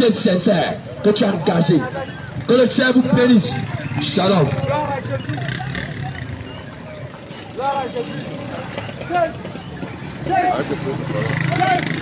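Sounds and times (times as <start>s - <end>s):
motorcycle engines running: 0.0s - 12.0s
people's voices: 0.0s - 12.0s.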